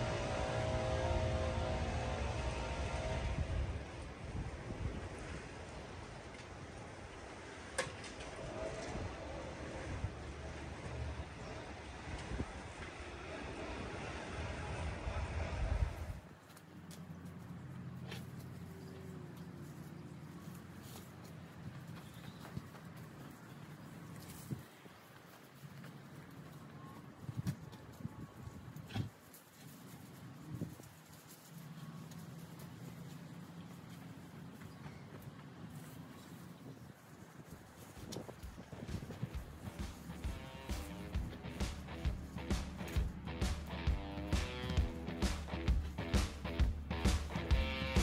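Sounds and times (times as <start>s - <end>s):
wind buffeting microphone: 0.0s - 6.8s, 8.2s - 16.3s, 36.6s - 43.2s
low steady hum: 0.0s - 21.7s
rake scraping mulch: 38.0s - 48.0s.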